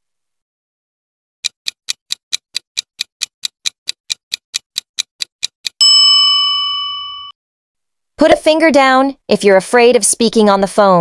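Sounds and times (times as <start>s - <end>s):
clock ticking: 1.4s - 5.8s
bell ding: 5.8s - 7.4s.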